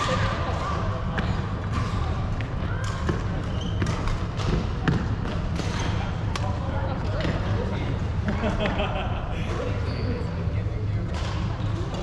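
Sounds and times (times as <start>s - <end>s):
low hum of sports hall: 0.0s - 12.0s.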